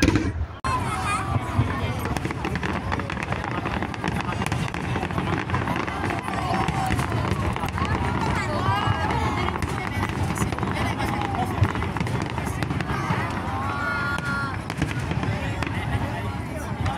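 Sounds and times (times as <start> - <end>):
sharp bang: 0.0 - 0.8
crowd chatter: 0.0 - 16.9
fireworks bursting: 0.0 - 16.9
fireworks crackling: 0.0 - 16.9.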